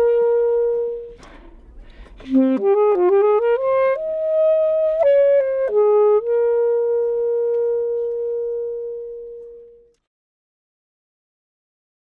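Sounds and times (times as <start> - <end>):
woodwind long steady note: 0.0 - 1.5, 2.2 - 10.0.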